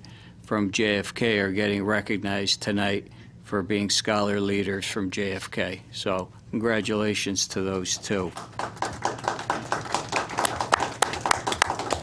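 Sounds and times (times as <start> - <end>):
small group applauding: 7.7 - 12.0.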